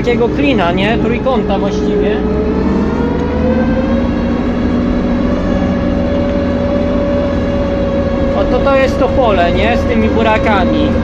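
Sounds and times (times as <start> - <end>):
combine harvester engine rumbling: 0.0 - 11.0
steady whine: 0.0 - 11.0.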